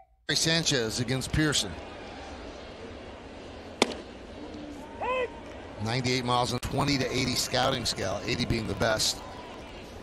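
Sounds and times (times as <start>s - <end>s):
stadium crowd murmur: 0.3s - 10.0s
baseball popping into mitt: 3.8s - 4.1s.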